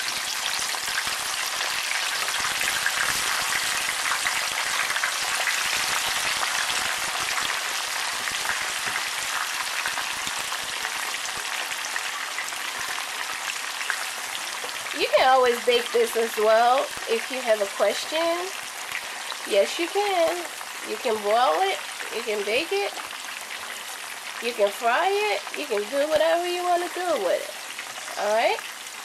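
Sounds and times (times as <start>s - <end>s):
food sizzling in hot oil: 0.0s - 29.0s.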